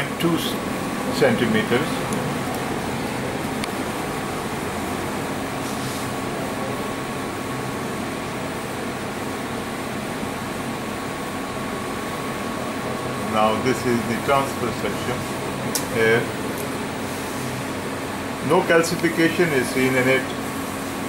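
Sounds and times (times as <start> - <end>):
cooling fan hum: 0.0 - 21.0.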